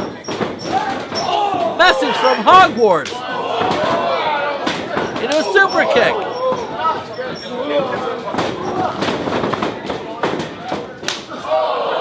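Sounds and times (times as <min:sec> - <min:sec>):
wrestlers' strikes and body thuds: 0:00.0 - 0:11.4
crowd shouting: 0:00.7 - 0:08.0, 0:11.3 - 0:12.0.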